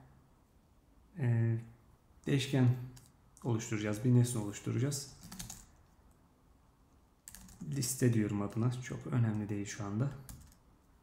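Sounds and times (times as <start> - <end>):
computer keyboard keystrokes: 5.2 - 5.7, 7.3 - 7.7, 10.2 - 10.6.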